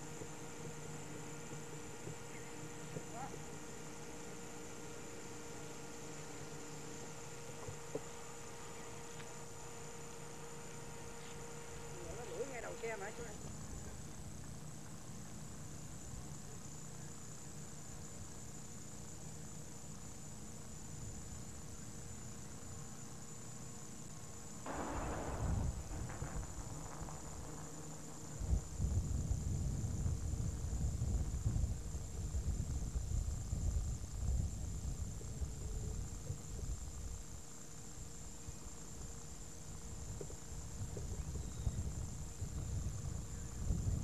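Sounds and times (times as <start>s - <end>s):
videotape hiss and hum: 0.0s - 44.0s
wind buffeting microphone: 24.7s - 37.2s, 40.6s - 44.0s.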